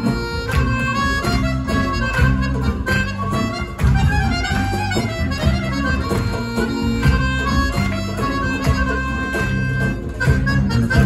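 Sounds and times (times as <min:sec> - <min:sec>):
accordion: 0:00.0 - 0:11.0
clarinet: 0:00.0 - 0:11.0
folk band playing live: 0:00.0 - 0:11.0.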